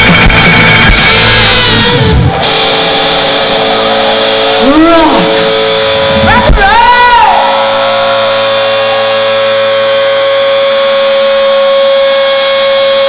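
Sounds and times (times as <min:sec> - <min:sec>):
rock band holding chord: 0:00.0 - 0:13.0
sung note bending: 0:07.8 - 0:13.0.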